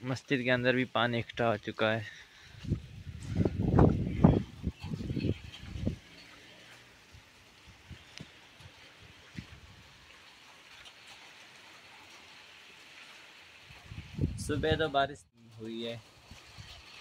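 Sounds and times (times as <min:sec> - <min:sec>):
light rain hiss: 0:00.0 - 0:14.3.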